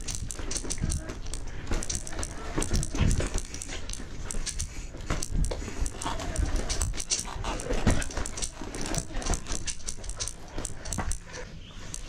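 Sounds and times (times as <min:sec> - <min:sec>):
bike rattling over rocks: 0:00.0 - 0:12.0
heavy panting breaths: 0:00.0 - 0:12.0.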